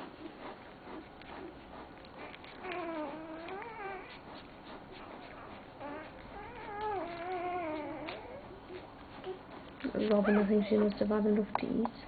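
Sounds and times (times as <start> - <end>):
puppy whining: 0.0 - 11.1.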